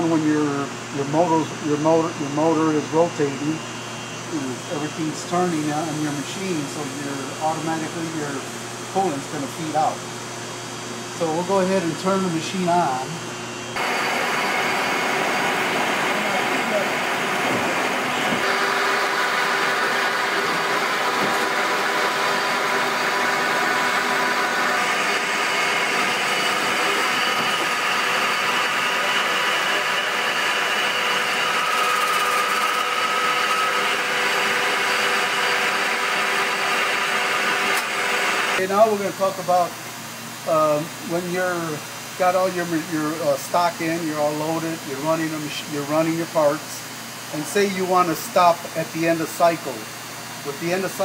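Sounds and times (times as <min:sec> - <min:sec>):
coolant pump running: 0:00.0 - 0:51.0
screw machine humming: 0:11.2 - 0:38.6.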